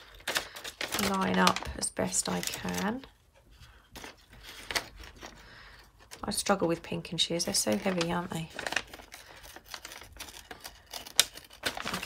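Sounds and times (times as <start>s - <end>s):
pinking shears cutting paper: 7.5s - 12.0s.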